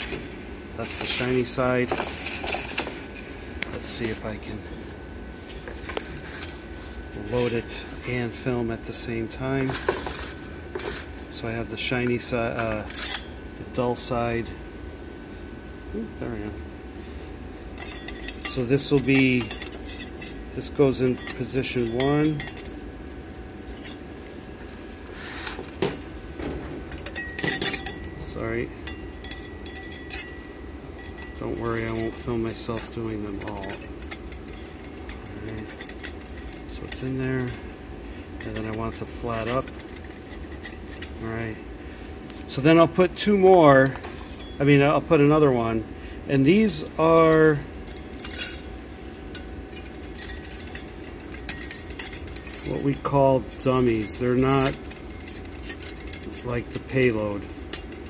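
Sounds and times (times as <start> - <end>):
low background hum: 0.0 - 58.0.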